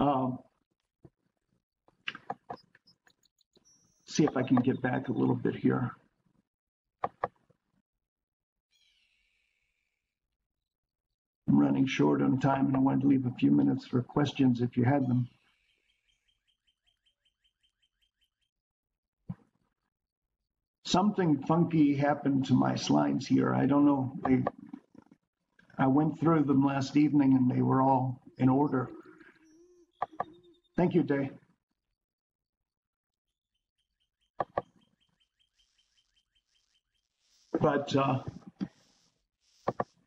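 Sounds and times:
bird chirping: 2.0 - 5.9, 8.7 - 10.1, 13.0 - 18.6, 26.1 - 31.4, 33.4 - 38.2
clicks: 4.1 - 4.9.

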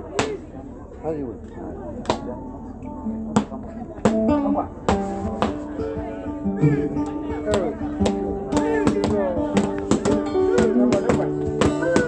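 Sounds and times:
held guitar notes: 2.0 - 12.0.

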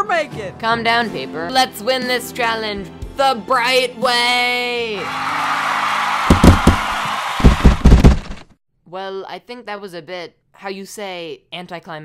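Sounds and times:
cartoon ball kick thumps: 6.3 - 8.5.

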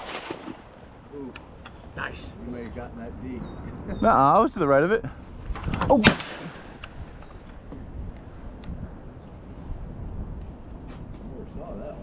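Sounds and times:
shotgun shot: 0.0 - 0.7, 5.7 - 6.8.

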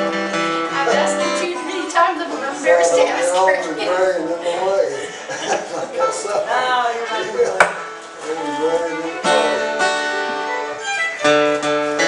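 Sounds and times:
acoustic guitar strumming chords: 0.0 - 12.0
string instruments: 0.0 - 12.0
sharp knock: 7.6 - 7.9.

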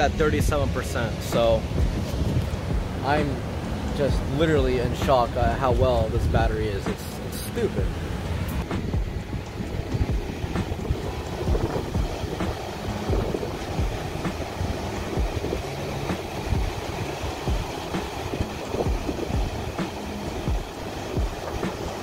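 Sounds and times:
ocean surf breaking: 0.0 - 22.0
wind on microphone: 0.0 - 22.0.

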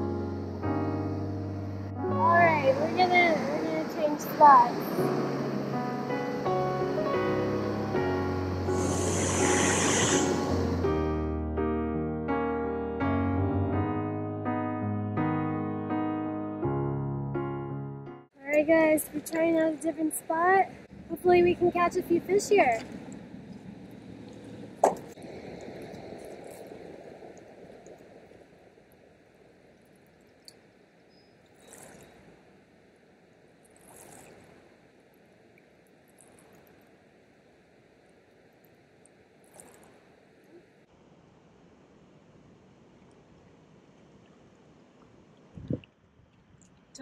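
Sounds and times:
light wind: 0.0 - 10.9, 18.3 - 47.0
water lapping: 18.7 - 37.1.

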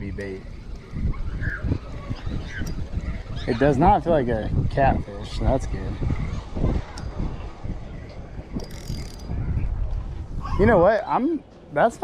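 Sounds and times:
spinning reel gears whirring: 8.6 - 9.4.

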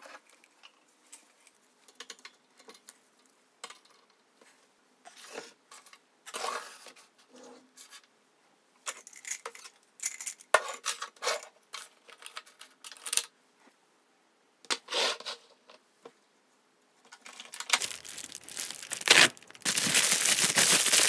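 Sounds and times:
plastic bubble mailer crinkling: 17.2 - 21.0.

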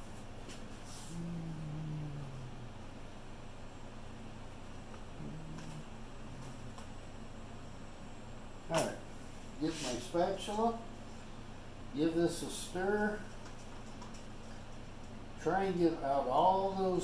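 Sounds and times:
steady low hum: 0.0 - 17.0
man humming: 0.9 - 3.0, 5.0 - 7.0.

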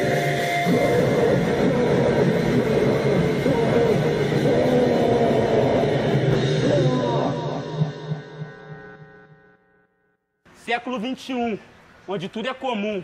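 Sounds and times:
distorted noise music: 0.0 - 9.7
wavering distorted tone: 0.0 - 10.1.

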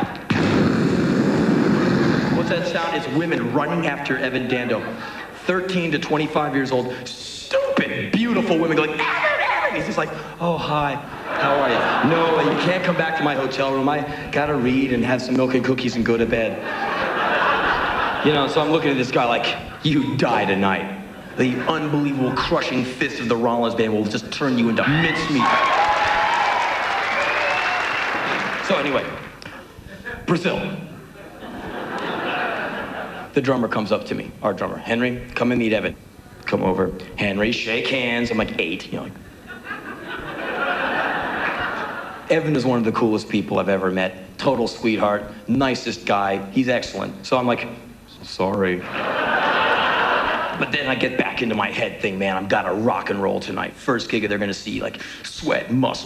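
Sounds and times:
audience laughing: 11.0 - 13.5, 16.5 - 22.9, 30.9 - 33.4, 39.3 - 42.3, 48.8 - 50.9
audience applauding: 24.9 - 29.4.

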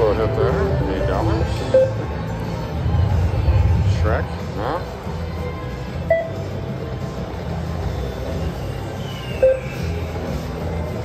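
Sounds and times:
low rumble of casino noise: 0.0 - 11.0
slot machine game music: 6.0 - 6.4.

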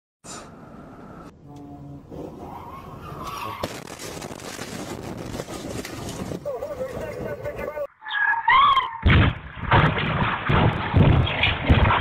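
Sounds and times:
car crash: 3.3 - 6.4, 9.0 - 12.0.

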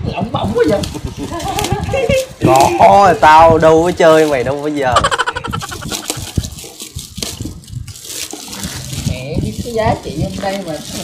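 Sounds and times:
plastic wrapping crinkling: 5.6 - 11.0.

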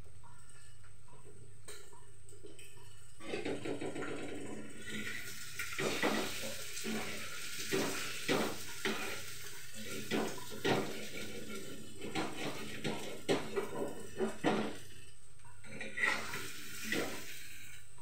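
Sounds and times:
frying hiss: 2.6 - 18.0
metal spatula scraping a pan: 4.8 - 14.9, 15.6 - 17.7.

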